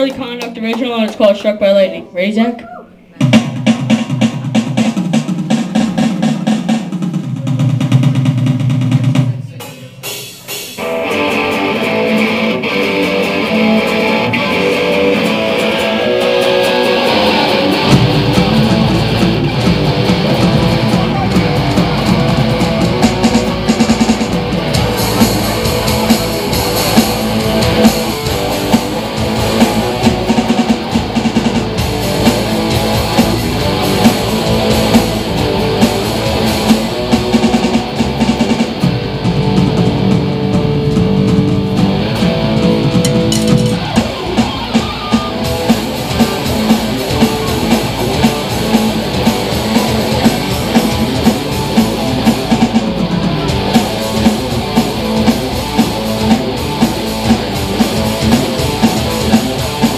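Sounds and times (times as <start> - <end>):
drum hits: 3.1 - 11.0, 15.2 - 59.9
rock band playing: 3.1 - 59.9.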